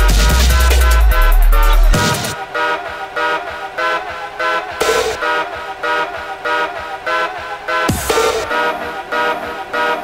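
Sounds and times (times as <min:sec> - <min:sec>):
horn-like synth chord stabs: 0:00.0 - 0:10.0.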